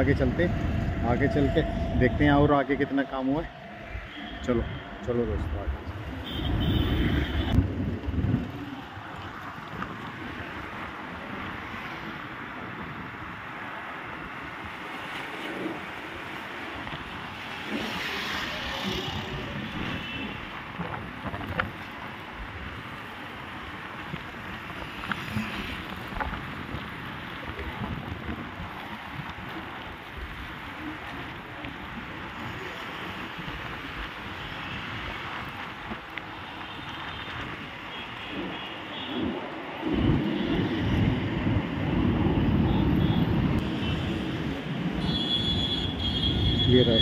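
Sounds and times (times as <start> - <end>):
wind on microphone: 0.0 - 45.1
road traffic noise: 0.0 - 47.0.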